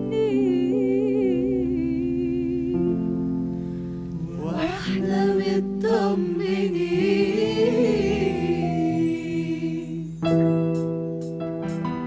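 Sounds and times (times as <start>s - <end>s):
choir singing: 4.2s - 10.3s.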